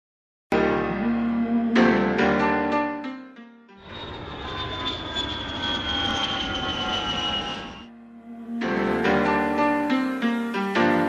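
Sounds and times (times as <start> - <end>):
engine whine falling in pitch: 3.8 - 7.9
airplane flying by: 3.8 - 8.5.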